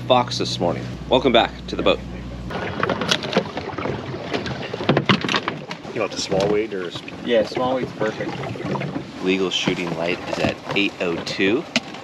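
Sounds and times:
muffled words: 0:00.0 - 0:02.4, 0:06.0 - 0:08.6, 0:09.2 - 0:11.6
low mechanical hum: 0:00.0 - 0:12.0.

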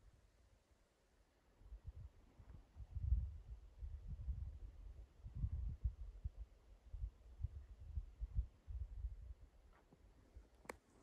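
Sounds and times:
wind buffeting microphone: 0:01.8 - 0:09.5.

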